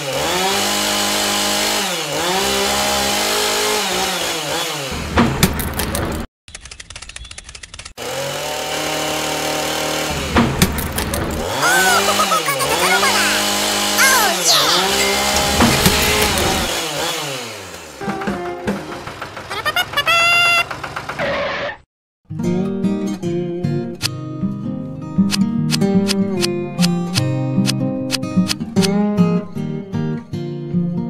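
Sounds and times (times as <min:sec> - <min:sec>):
chainsaw revving: 0:00.0 - 0:05.0, 0:08.0 - 0:10.4, 0:12.8 - 0:14.0, 0:14.9 - 0:18.2.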